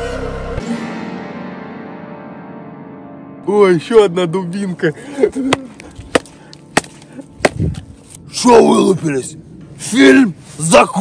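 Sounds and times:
wooden club whacking tree stump: 5.4 - 7.7
stump splintering: 5.4 - 7.8.

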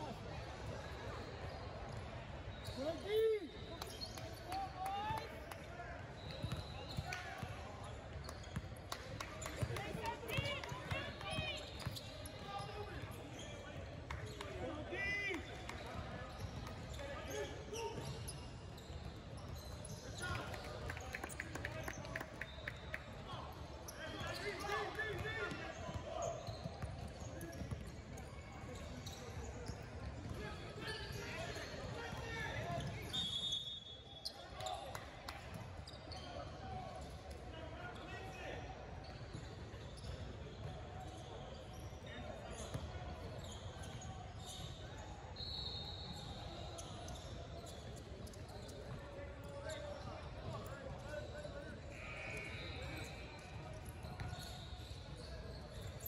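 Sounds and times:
referee whistle blasts: 33.0 - 34.2
voices echoing in hall: 34.0 - 56.0.

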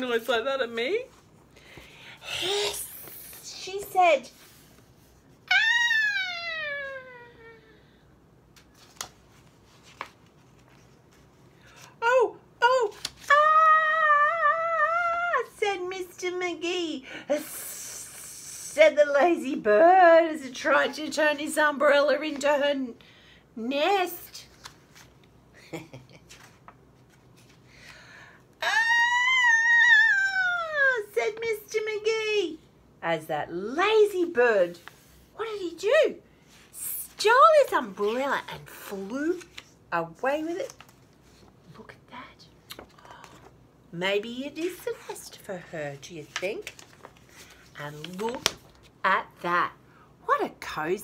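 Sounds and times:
woman screaming: 5.5 - 7.6, 13.3 - 15.4, 28.6 - 31.1
woman crying out ahh: 5.5 - 7.8, 28.6 - 30.9.

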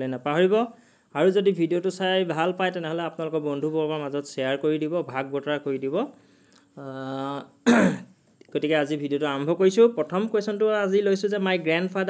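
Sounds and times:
man clearing throat: 7.6 - 8.2.

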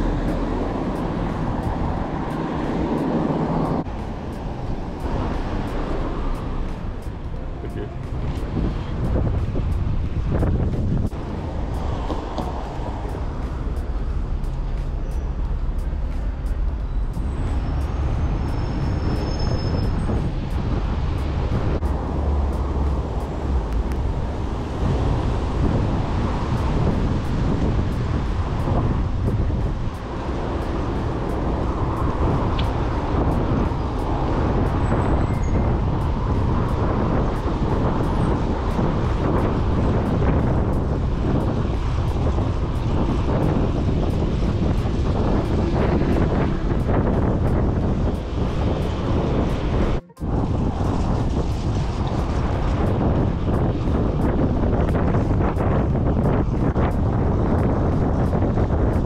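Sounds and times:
city traffic passing: 0.0 - 59.0
wind rushing over microphone: 0.0 - 59.0.

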